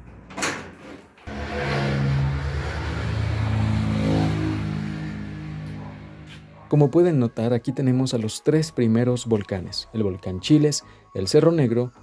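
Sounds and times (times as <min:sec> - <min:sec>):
vehicle engine passing by: 0:01.3 - 0:06.9.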